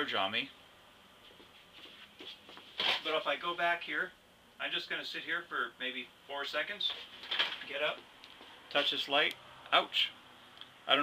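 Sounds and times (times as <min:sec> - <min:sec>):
person walking and sitting down: 0:01.2 - 0:03.4.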